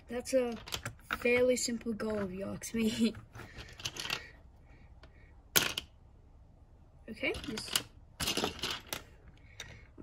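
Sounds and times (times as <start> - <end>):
plastic bricks rattling: 0.4 - 2.4, 3.4 - 4.4, 7.4 - 9.8.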